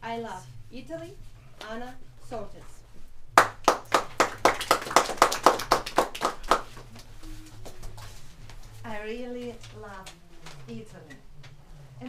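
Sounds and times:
audience clapping: 3.4s - 8.2s.

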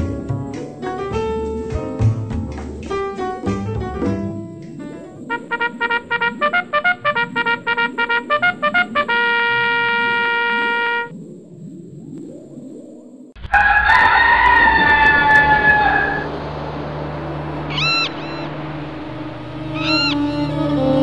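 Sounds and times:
held brass note: 5.3s - 11.1s
rooster crowing: 13.4s - 16.3s
low steady hum: 15.6s - 21.0s
short chirping calls: 17.7s - 18.5s, 19.6s - 20.6s.

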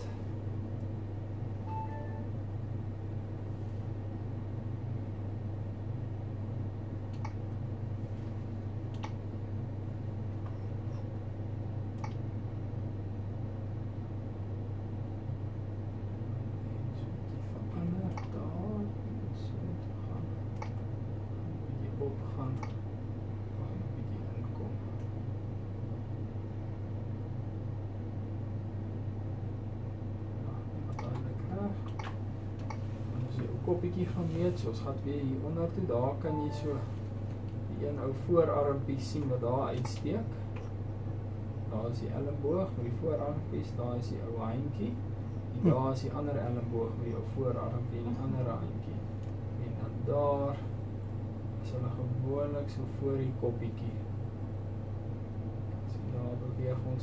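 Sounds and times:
electrical hum: 0.0s - 57.0s
faint beep: 1.6s - 2.3s, 36.3s - 36.8s.

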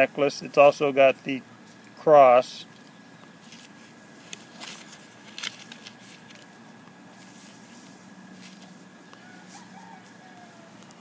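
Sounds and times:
faint background hum: 0.0s - 11.0s
faint bird call: 9.1s - 11.0s.

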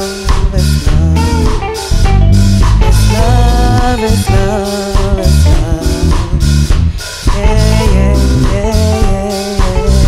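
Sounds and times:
bass guitar: 0.0s - 10.0s
drum kit: 0.0s - 10.0s
electric guitar: 0.0s - 10.0s.

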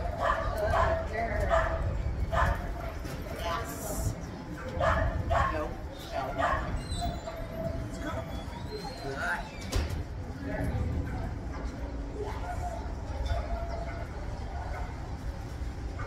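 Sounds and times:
dog barking: 0.1s - 3.0s, 4.6s - 7.5s, 12.4s - 15.1s.

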